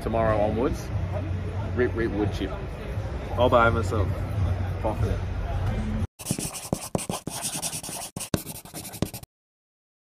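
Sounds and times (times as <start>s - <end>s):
pen scratching on paper: 6.2s - 9.3s.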